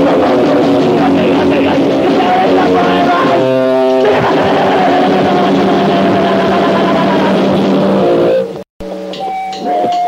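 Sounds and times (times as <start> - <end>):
distorted electric guitar and bass: 0.0 - 10.0.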